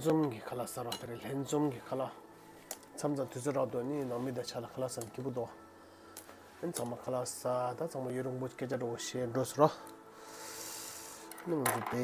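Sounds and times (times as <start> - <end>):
man talking: 3.0 - 5.6, 6.6 - 9.8, 11.4 - 12.0.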